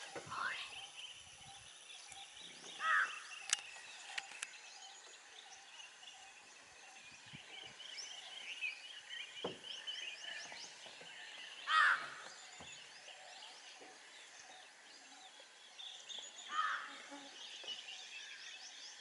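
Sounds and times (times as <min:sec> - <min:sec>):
small birds chirping: 0:00.0 - 0:19.0
sharp clicks: 0:03.4 - 0:04.5.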